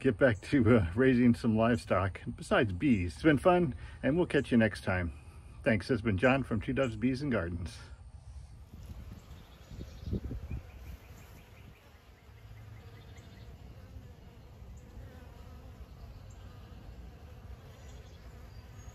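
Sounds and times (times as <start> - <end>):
bees buzzing: 8.6 - 18.9.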